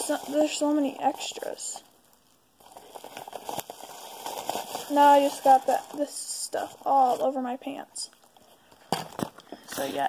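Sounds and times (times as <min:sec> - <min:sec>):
packaging filler crackling: 0:00.0 - 0:08.2.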